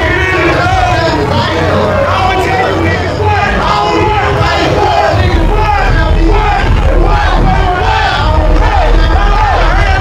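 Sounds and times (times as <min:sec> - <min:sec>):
bass-heavy beat: 0:00.0 - 0:10.0
crowd yelling: 0:00.0 - 0:10.0
rapping into microphones: 0:00.0 - 0:10.0.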